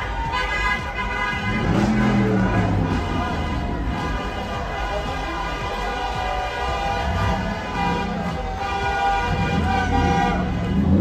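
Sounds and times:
car horns blaring: 0:00.0 - 0:11.0
street crowd noise: 0:00.0 - 0:11.0
engines running: 0:00.8 - 0:11.0.

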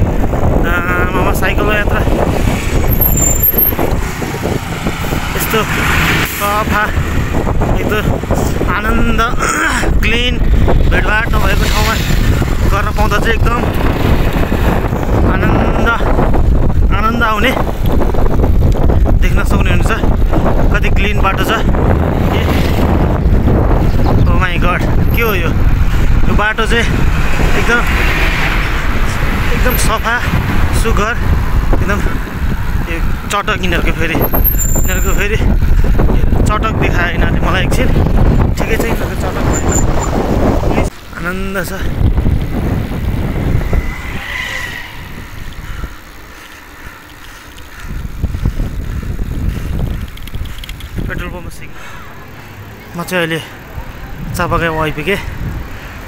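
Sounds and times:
wind buffeting microphone: 0:00.0 - 0:56.0
vehicle passing: 0:01.5 - 0:08.7, 0:25.5 - 0:33.4, 0:37.9 - 0:56.0
person speaking: 0:50.8 - 0:55.4.

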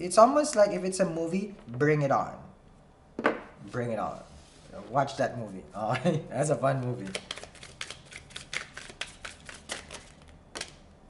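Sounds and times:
cards shuffled by hand: 0:06.8 - 0:10.8.

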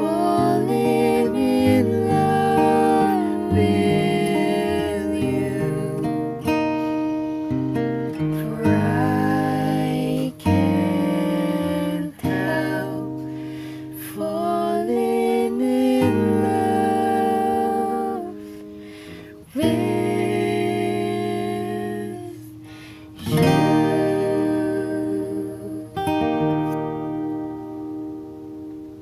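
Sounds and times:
person singing: 0:00.0 - 0:26.7
acoustic guitar ballad: 0:00.0 - 0:29.0.

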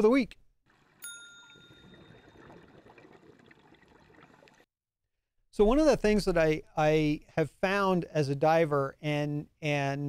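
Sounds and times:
underwater water noise: 0:00.7 - 0:04.7
chime ringing: 0:01.0 - 0:02.4.

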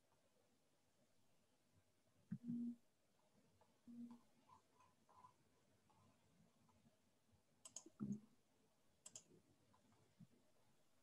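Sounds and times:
faint double clicks: 0:07.6 - 0:08.2, 0:09.0 - 0:09.3.

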